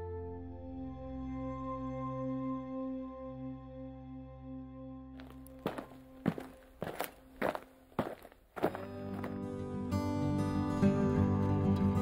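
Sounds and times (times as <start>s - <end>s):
footsteps walking: 5.2s - 9.4s.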